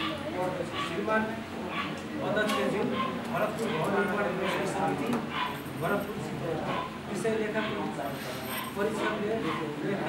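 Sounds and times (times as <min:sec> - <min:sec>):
man reading aloud: 0:05.8 - 0:10.0.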